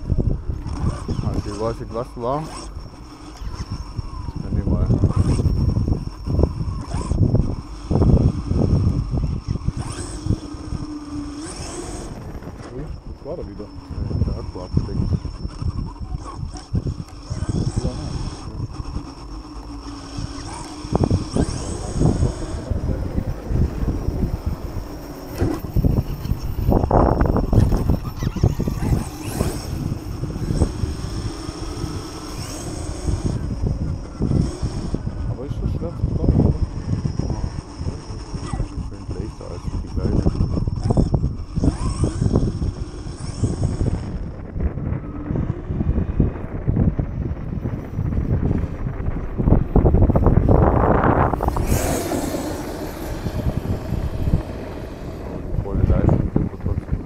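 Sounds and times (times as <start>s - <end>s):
faint high whine: 0.0s - 57.0s
rc truck driving rumble: 0.0s - 57.0s
wind on microphone: 0.0s - 57.0s.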